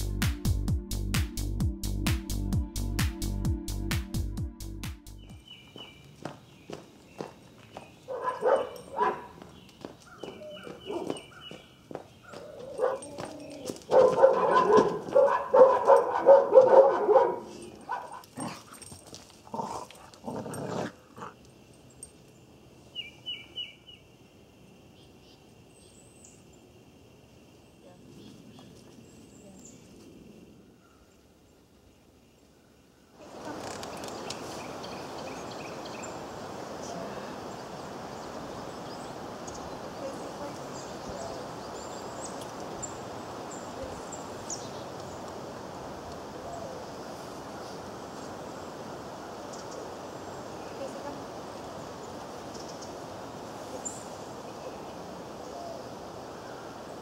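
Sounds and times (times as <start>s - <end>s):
dog barking: 8.1s - 9.4s, 10.6s - 11.2s, 12.3s - 18.2s.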